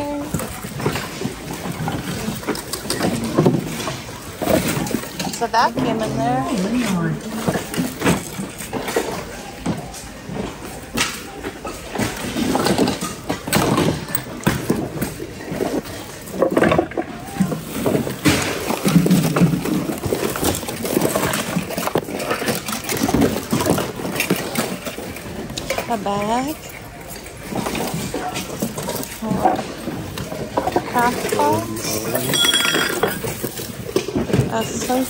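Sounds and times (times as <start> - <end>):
items knocking and clattering: 0.0 - 35.0
indistinct voices: 30.5 - 32.8.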